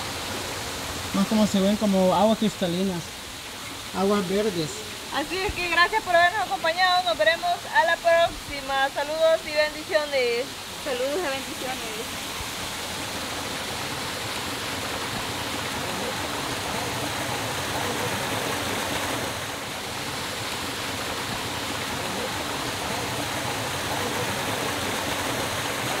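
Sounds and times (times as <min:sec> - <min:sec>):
waterfall pouring into pool: 0:00.0 - 0:26.0.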